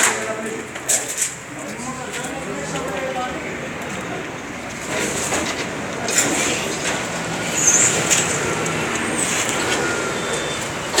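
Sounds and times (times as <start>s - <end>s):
street traffic: 0.0s - 11.0s
vehicle passing: 2.4s - 11.0s.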